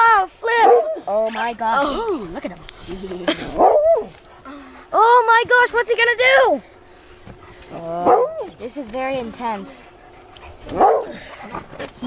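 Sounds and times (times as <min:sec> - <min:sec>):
dog barking: 0:00.6 - 0:01.0, 0:03.6 - 0:04.1, 0:08.0 - 0:08.5, 0:10.6 - 0:11.2.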